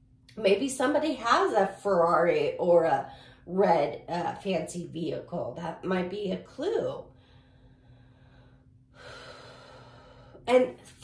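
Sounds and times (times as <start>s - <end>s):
woman inhaling: 7.1s - 10.4s.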